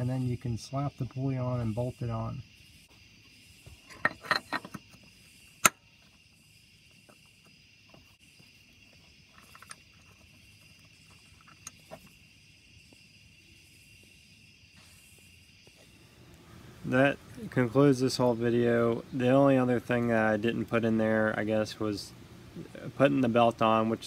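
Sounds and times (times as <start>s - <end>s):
insects chirping: 0.0s - 24.0s.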